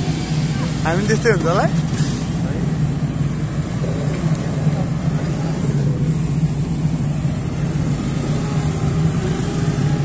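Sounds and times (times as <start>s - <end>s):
large diesel engine droning: 0.0s - 10.0s.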